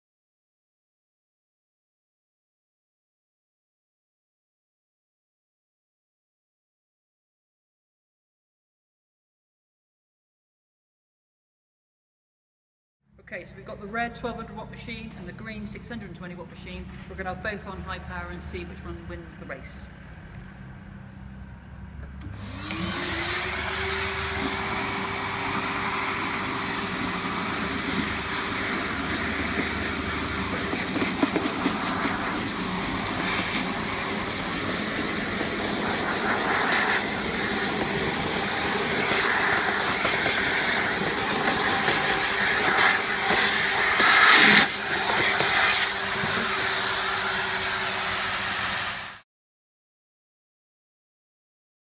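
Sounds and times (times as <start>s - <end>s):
vacuum cleaners running: 21.5s - 49.2s
hoses sucking up sawdust: 22.4s - 49.2s.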